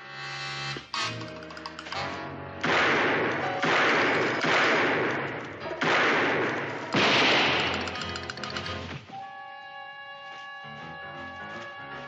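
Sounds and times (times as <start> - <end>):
background score music: 0.0 - 12.0
gunshot: 2.6 - 7.9.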